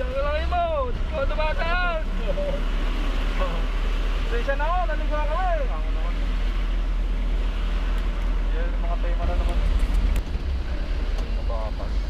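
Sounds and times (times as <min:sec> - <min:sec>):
vehicle low rumble: 0:00.0 - 0:12.0.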